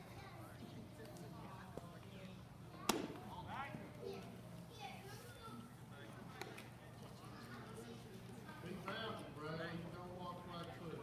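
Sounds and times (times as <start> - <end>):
baseball striking with sharp crack: 2.8 - 3.4.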